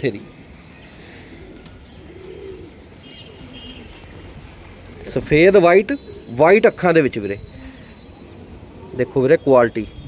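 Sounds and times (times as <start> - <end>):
pigeon cooing: 0.9 - 6.4, 7.4 - 9.3.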